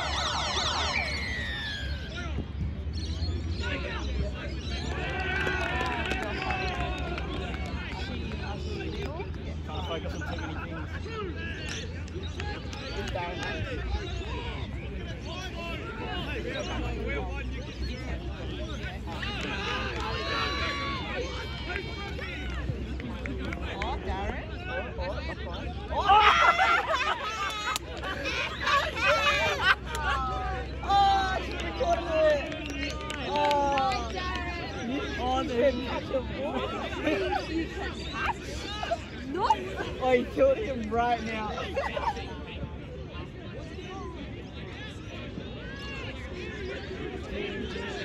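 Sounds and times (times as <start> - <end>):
people shouting and calling: 0.0 - 2.5, 3.5 - 9.1, 9.7 - 42.6
babble of voices: 3.0 - 48.0.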